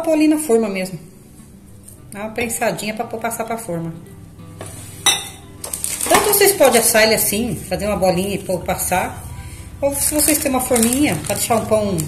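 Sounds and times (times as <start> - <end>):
bowl clinking: 5.0 - 7.0.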